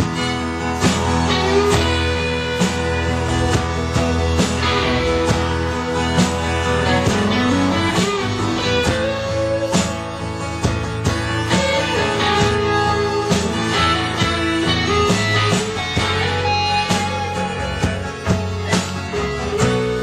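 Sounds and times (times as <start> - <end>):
guitar strummed rhythmically: 0.0 - 20.0
sliding lead melody: 0.0 - 20.0.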